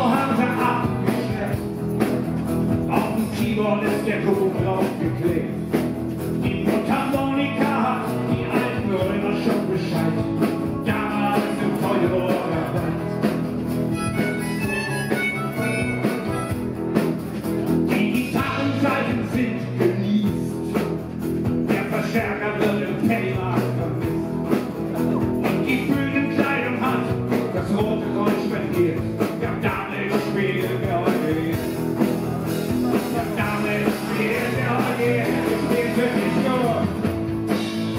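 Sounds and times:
live folk-rock band playing: 0:00.0 - 0:37.9.

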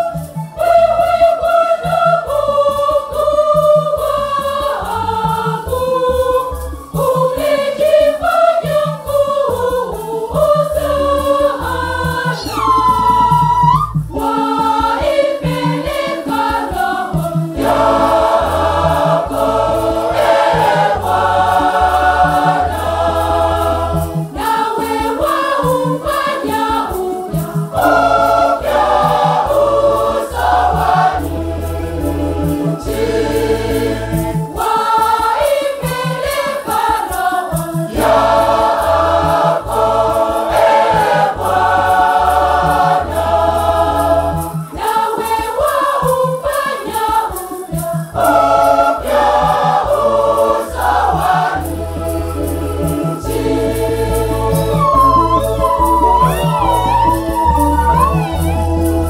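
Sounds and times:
choir singing a hymn: 0:00.0 - 0:59.0
regular beat: 0:00.1 - 0:59.0.

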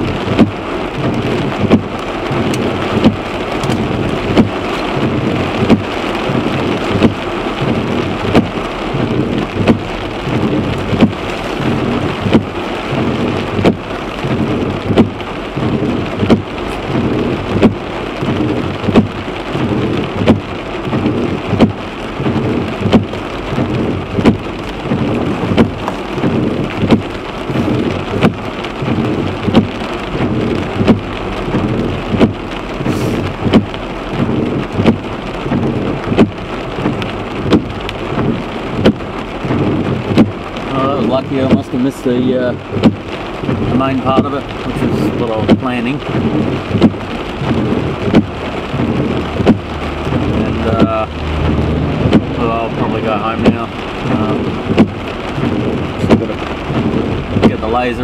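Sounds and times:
rain and hail on a car roof: 0:00.0 - 0:58.0.

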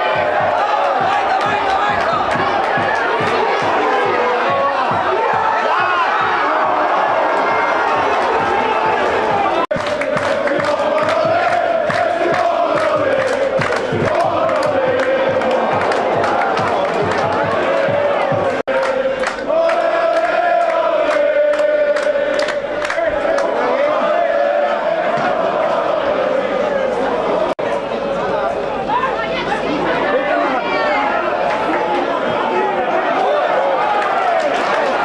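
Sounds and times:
sharp rhythmic beats: 0:00.0 - 0:23.6
football crowd chanting: 0:00.0 - 0:28.2, 0:29.8 - 0:35.0.

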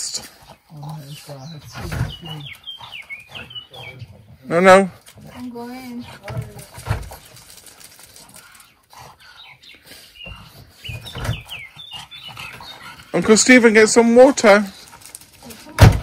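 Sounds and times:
small birds chirping: 0:00.0 - 0:16.0.

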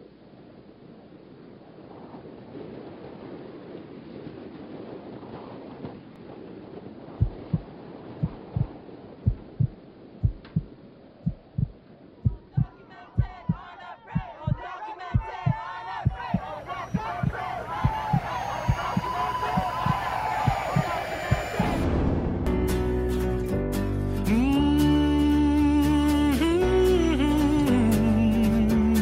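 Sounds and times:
deep double thump beat: 0:07.2 - 0:08.7, 0:09.3 - 0:10.7, 0:11.3 - 0:22.7
concert crowd noise: 0:12.5 - 0:21.8
crowd shouting and cheering: 0:12.6 - 0:22.0.

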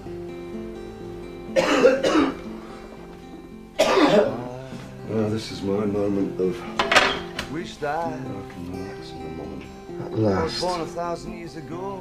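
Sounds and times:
plucked guitar-like music: 0:00.0 - 0:12.0
person coughing hard: 0:01.6 - 0:02.5, 0:03.8 - 0:04.5.

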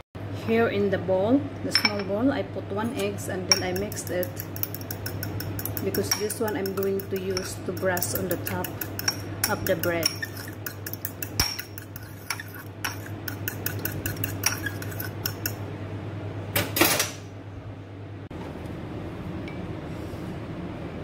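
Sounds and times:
fork beating egg in bowl: 0:03.5 - 0:15.6
fork clattering: 0:03.5 - 0:15.6.

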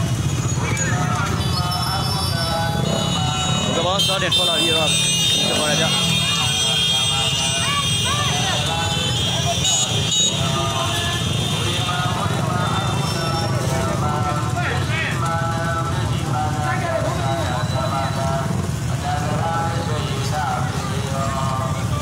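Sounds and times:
motorcycle engines rumbling: 0:00.0 - 0:22.0
people talking and calling out: 0:00.0 - 0:22.0.

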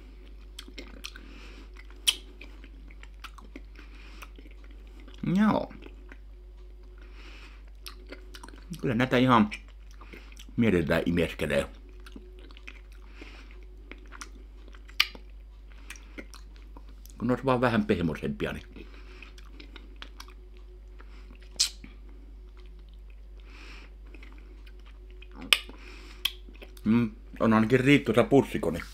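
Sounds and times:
chewing and sucking candy: 0:00.1 - 0:08.9, 0:09.5 - 0:10.6, 0:11.5 - 0:17.2, 0:18.6 - 0:26.9
wet mouth clicks: 0:01.8 - 0:04.8, 0:14.0 - 0:15.3, 0:21.4 - 0:23.0, 0:24.2 - 0:26.9
man talking: 0:05.2 - 0:05.8, 0:08.7 - 0:09.6, 0:10.6 - 0:11.8, 0:17.2 - 0:18.7, 0:26.8 - 0:28.9.

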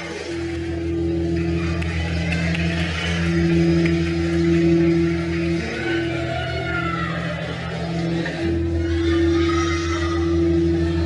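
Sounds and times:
electric guitars droning chord: 0:00.0 - 0:11.0
steady low pulse: 0:00.0 - 0:11.0.

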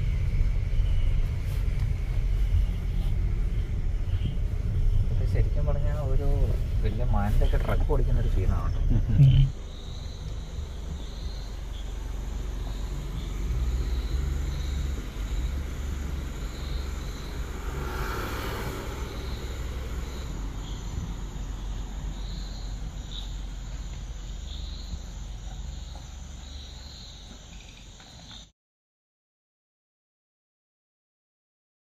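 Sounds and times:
car engine idling: 0:00.0 - 0:27.9
insects chirping: 0:00.0 - 0:28.5
brief rushing sound: 0:17.1 - 0:21.2.

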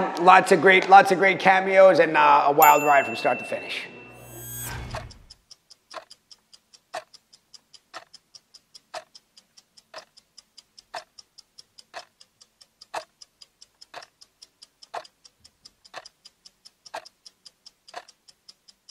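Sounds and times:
clock ticking: 0:04.4 - 0:18.9.

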